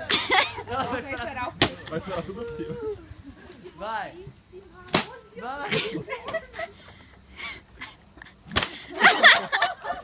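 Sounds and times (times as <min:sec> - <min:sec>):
stick whacking pinata: 0:04.9 - 0:05.2, 0:08.5 - 0:08.8.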